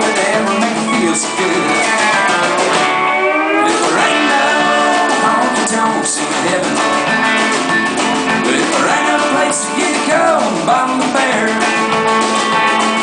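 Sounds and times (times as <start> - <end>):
drums and bass: 0.0 - 13.0
electric guitar lead: 0.0 - 13.0.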